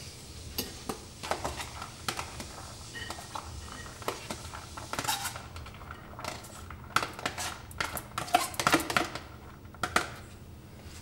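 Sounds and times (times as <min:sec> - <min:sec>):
fork and container scraping plate: 0:02.9 - 0:05.5.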